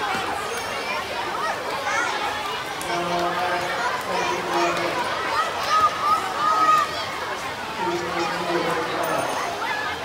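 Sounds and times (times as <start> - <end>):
children shouting and chattering: 0.0 - 10.0.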